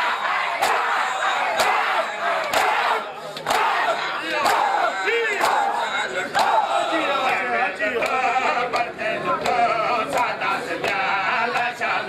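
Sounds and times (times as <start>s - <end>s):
men shouting and chanting: 0.0s - 12.0s
hands slapping chests in unison: 0.6s - 4.8s, 5.4s - 5.7s.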